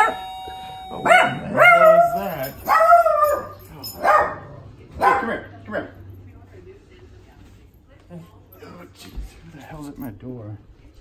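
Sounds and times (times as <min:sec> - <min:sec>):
small dog barking: 0:01.0 - 0:05.9.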